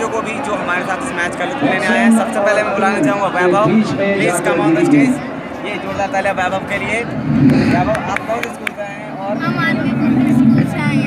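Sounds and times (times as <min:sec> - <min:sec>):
outdoor crowd noise: 0:00.0 - 0:11.0
child talking: 0:09.4 - 0:11.0.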